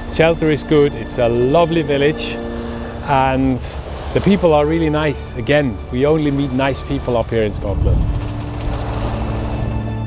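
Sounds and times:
boat noise: 0.0 - 10.0
music of long held notes: 0.0 - 10.0
wind rushing: 7.3 - 10.0.

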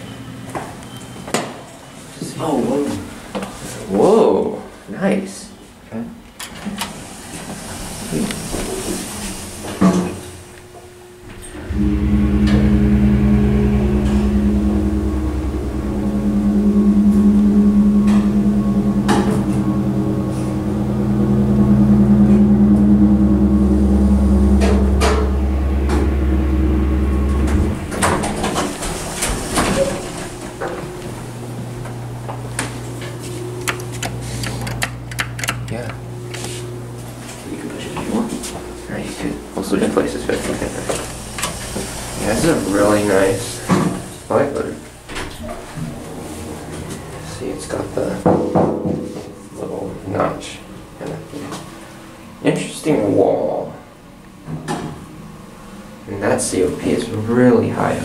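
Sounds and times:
elevator pump motor humming: 8.0 - 54.4
quiet low hum: 11.2 - 34.4.

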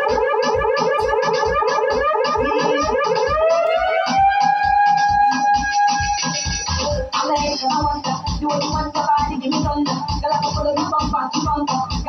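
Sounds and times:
kick drum beat: 0.0 - 12.0.

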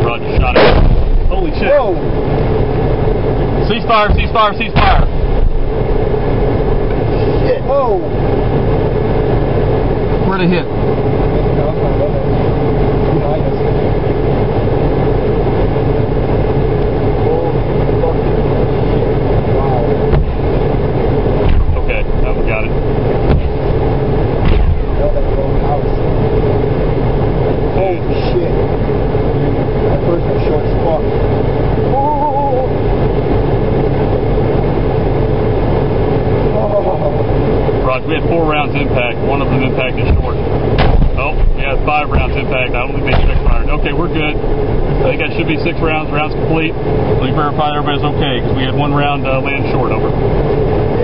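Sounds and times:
engine drone: 0.0 - 51.0.

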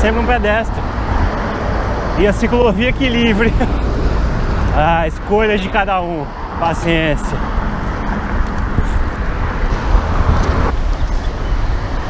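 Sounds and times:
car traffic: 0.0 - 12.0
wind rumble on microphone: 7.4 - 12.0.

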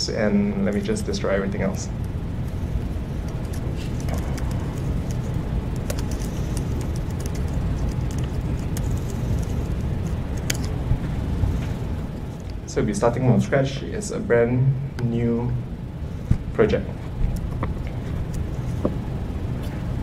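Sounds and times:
low room rumble: 0.0 - 20.0
laptop keys typing: 2.0 - 10.8.

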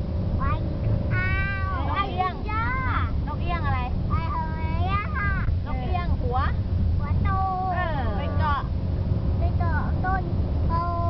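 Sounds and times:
low drone of moving car: 0.0 - 11.0.

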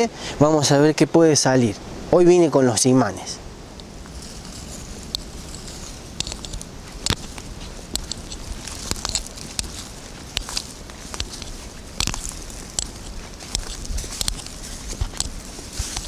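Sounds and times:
footsteps crunching on dry leaves: 3.9 - 16.0.

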